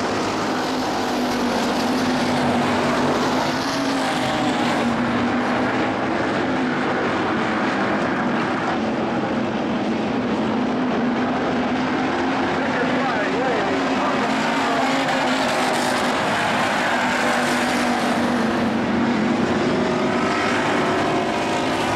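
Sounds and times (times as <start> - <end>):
race car engine running steadily: 0.0 - 21.9.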